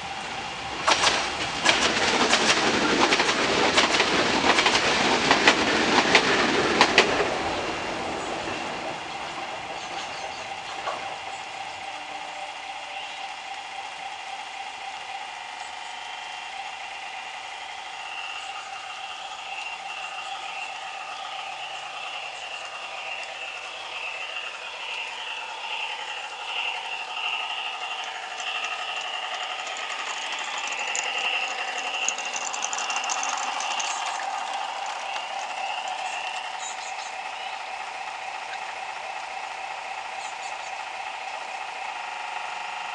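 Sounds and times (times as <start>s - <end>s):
model locomotive engine sound: 0.0s - 42.9s
loud rattle: 14.0s - 42.9s.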